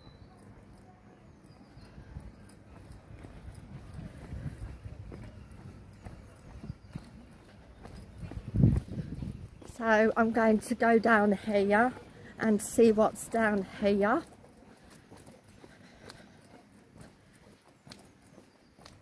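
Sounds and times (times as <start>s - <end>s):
footsteps on tarmac: 0.0s - 19.0s
woman speaking: 9.7s - 14.3s.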